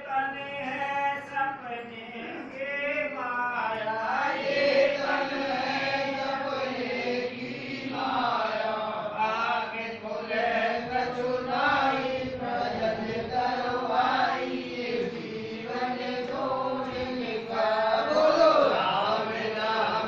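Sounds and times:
voices chanting devotional song: 0.0 - 20.0.

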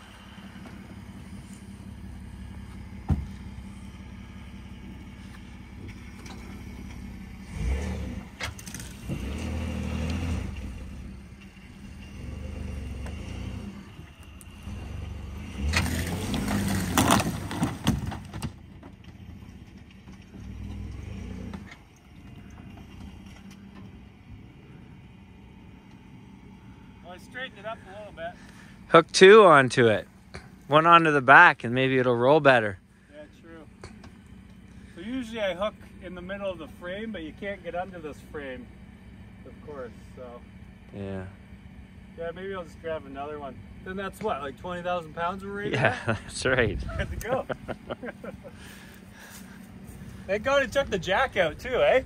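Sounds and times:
truck engine idling and revving: 0.0 - 52.0.

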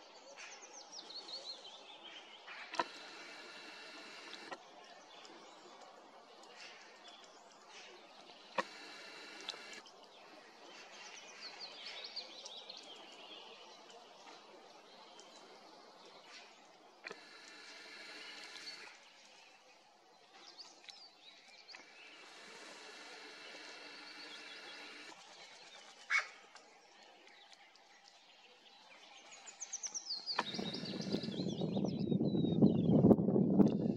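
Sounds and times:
birds calling and chirping: 0.0 - 5.6, 6.4 - 33.1
wind rumble on microphone: 30.4 - 33.9.

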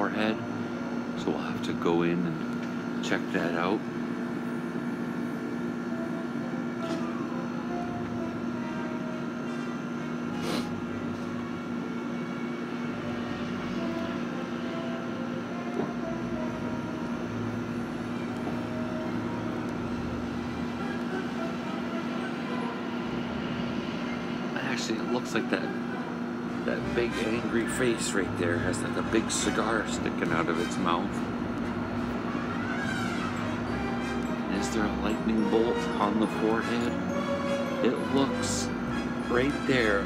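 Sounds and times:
low machine hum: 0.0 - 40.0.

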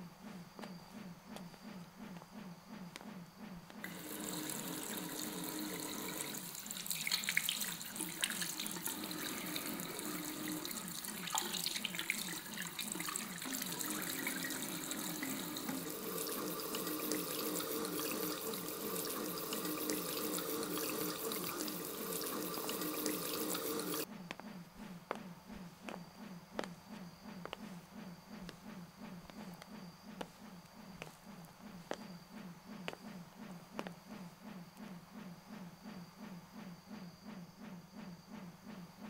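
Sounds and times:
hands washing under water: 3.8 - 24.1
tap water running into sink: 3.8 - 24.1.

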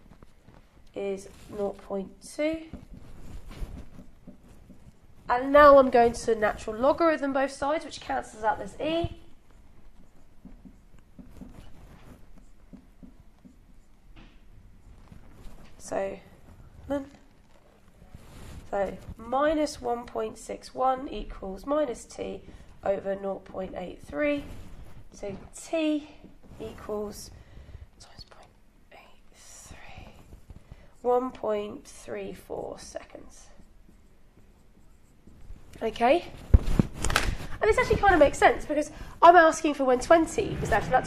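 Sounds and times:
low room noise: 0.0 - 41.0
marker pen writing on whiteboard: 0.0 - 41.0
woman breathing quietly: 27.3 - 28.0
woman whispering: 28.0 - 30.4.

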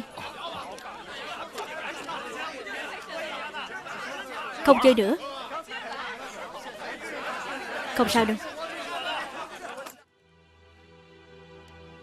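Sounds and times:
murmur of crowd chatter: 0.0 - 10.1.

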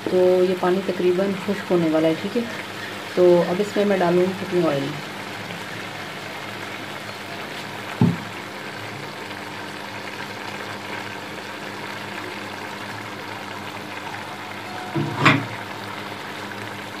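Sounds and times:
pot bubbling hiss: 0.0 - 17.0
knock: 8.0 - 8.3.

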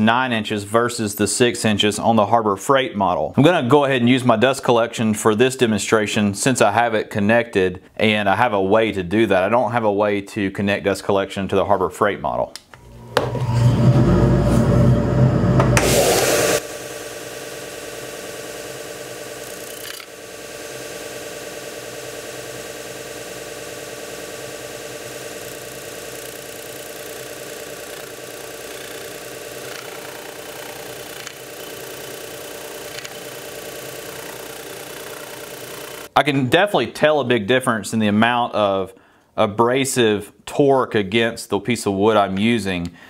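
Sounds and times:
sander motor hum: 12.8 - 36.1
loud rush: 13.2 - 16.8.

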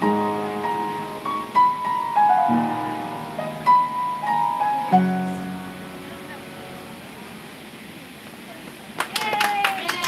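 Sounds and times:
piano chord: 0.0 - 7.1
people clapping: 8.6 - 10.0.

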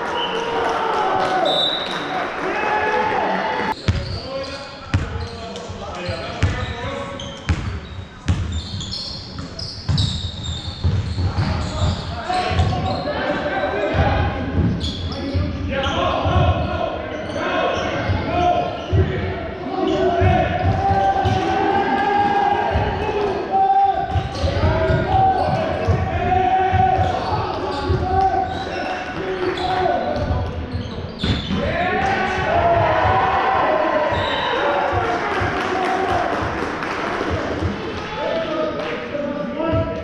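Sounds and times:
players shouting: 19.6 - 30.1, 31.5 - 38.7.

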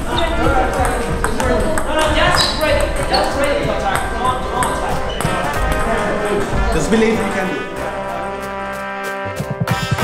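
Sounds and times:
table tennis balls clicking: 0.0 - 6.9
people talking: 0.0 - 8.4.

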